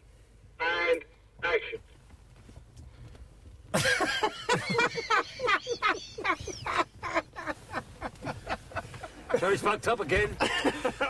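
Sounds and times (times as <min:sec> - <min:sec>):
man laughing: 0:03.7 - 0:11.0.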